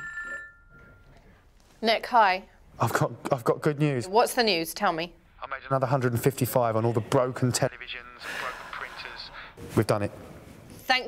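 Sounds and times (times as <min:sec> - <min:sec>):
electronic telephone ring: 0:00.0 - 0:01.0.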